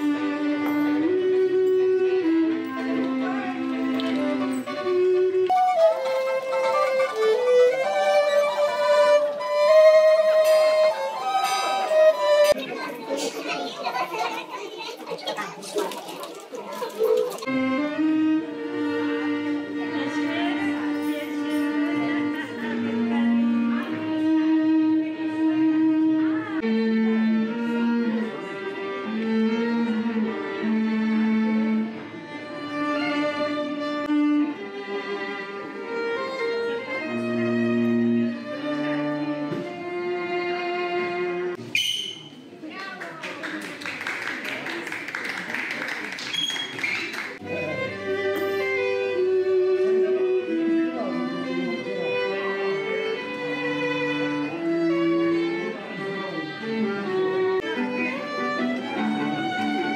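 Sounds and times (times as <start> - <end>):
violin and cello duet: 0.0 - 12.6, 17.4 - 41.6, 47.4 - 59.9
passers-by chattering: 0.0 - 59.9
children's voices: 12.5 - 17.5.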